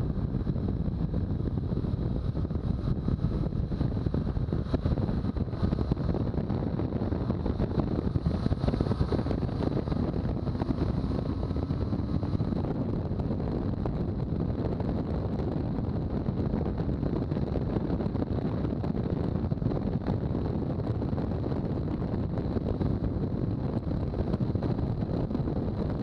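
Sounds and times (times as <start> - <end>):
motorcycle engine drone: 0.0 - 26.0
wind rushing over microphone: 0.0 - 26.0.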